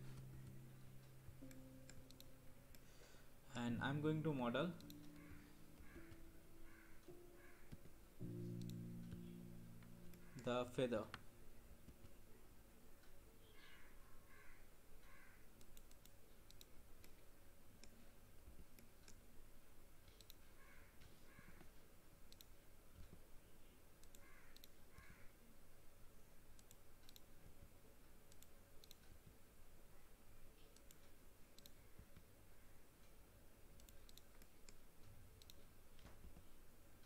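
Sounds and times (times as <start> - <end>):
keyboard clicks: 0.2 - 2.9, 4.6 - 12.2, 15.6 - 17.2, 20.0 - 20.4, 22.3 - 23.2, 24.0 - 25.1, 26.6 - 27.3, 28.3 - 29.4, 30.6 - 32.3, 33.8 - 34.8, 35.4 - 36.4
computer mouse clicks: 1.4 - 2.9, 4.8 - 6.8, 15.0 - 18.0, 20.0 - 20.7, 22.3 - 23.2, 24.0 - 25.2, 26.5 - 27.5, 28.3 - 29.4, 30.6 - 32.3, 33.8 - 36.4.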